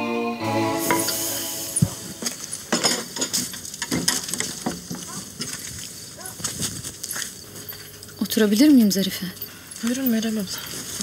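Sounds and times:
small knocks clicks and rustles: 0:02.7 - 0:08.7.

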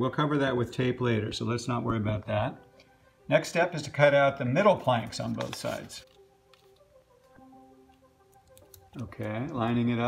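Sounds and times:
paper ticks and rustles: 0:04.9 - 0:06.9.

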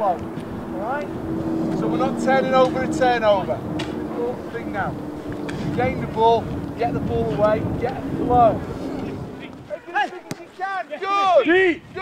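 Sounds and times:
wind rumble on microphone: 0:00.0 - 0:09.8, 0:11.6 - 0:12.0
ball being kicked: 0:09.5 - 0:10.6.

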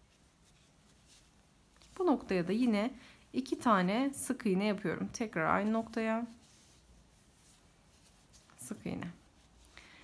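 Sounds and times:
faint soft yarn rustles: 0:00.0 - 0:10.0.

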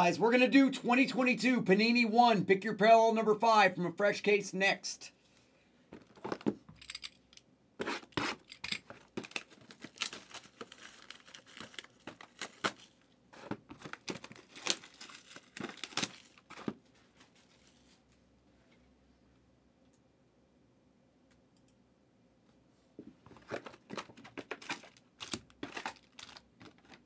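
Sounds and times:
packaging being torn and crinkled: 0:08.3 - 0:13.1, 0:13.7 - 0:16.8, 0:23.4 - 0:27.0.

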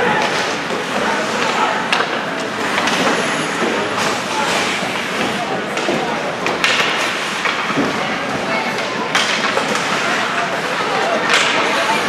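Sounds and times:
crowd voices: 0:00.0 - 0:12.0
skates on ice: 0:00.0 - 0:12.0.

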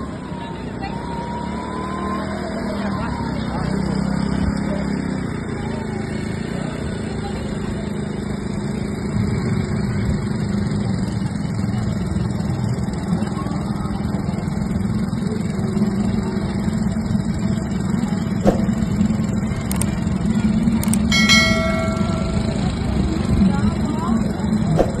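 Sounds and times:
quad bike engines running: 0:00.0 - 0:24.8
brief ringing tone: 0:21.0 - 0:22.8.

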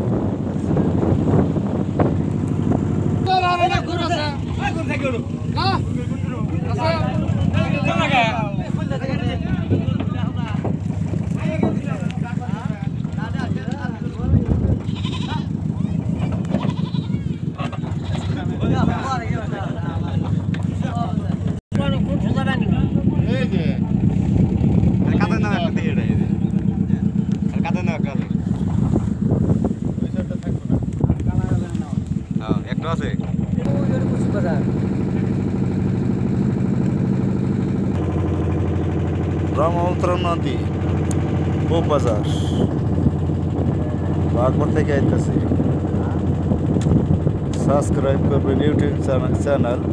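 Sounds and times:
boat engine droning: 0:00.0 - 0:49.9
voices talking: 0:00.3 - 0:49.9.

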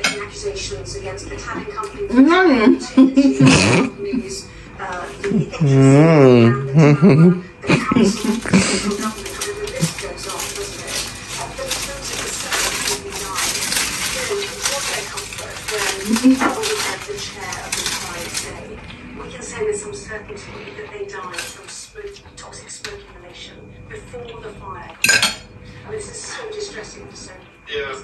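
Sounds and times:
aluminium foil crinkling: 0:07.7 - 0:19.0, 0:21.2 - 0:22.2
metal fork clinking on plate: 0:25.0 - 0:25.4.

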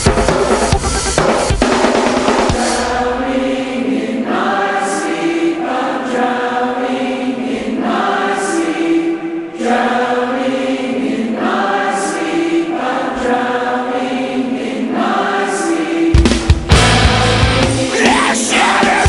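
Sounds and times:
choir-like sustained singing: 0:00.1 - 0:19.0.

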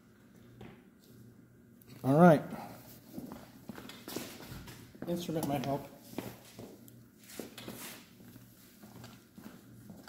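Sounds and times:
footsteps on tiled floor: 0:03.0 - 0:10.0.

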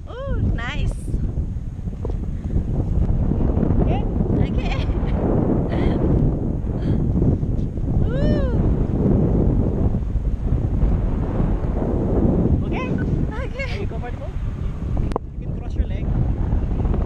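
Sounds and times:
wind buffeting microphone: 0:00.0 - 0:17.0
person exclaiming: 0:08.0 - 0:08.6.

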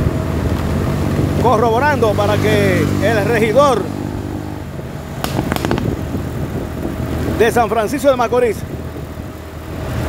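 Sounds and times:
vehicle engine and road drone: 0:00.0 - 0:10.0.

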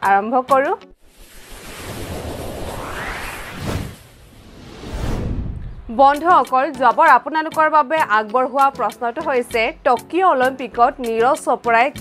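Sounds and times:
rising whoosh: 0:00.9 - 0:06.4.

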